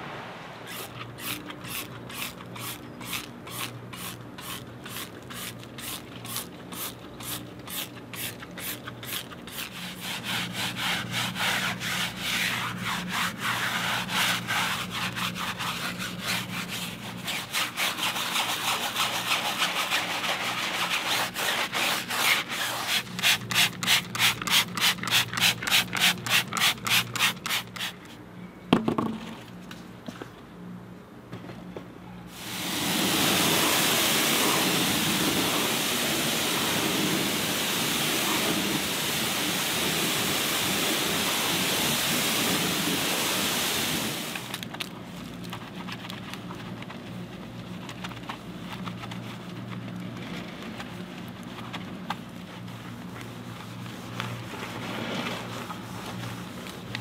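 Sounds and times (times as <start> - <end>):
brush scrubbing a rubber tyre: 0.7 - 28.0, 32.4 - 44.5, 50.8 - 56.9.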